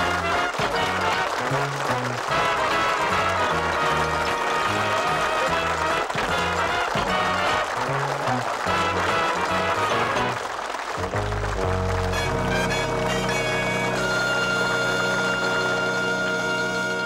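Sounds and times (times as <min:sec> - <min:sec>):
sitcom theme tune: 0:00.0 - 0:17.0.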